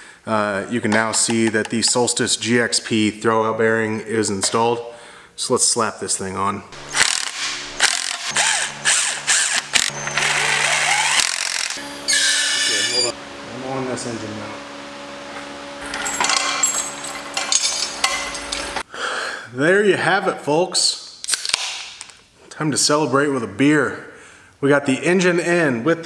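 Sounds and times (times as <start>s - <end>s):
impact driver hammering: 6.8s - 11.8s.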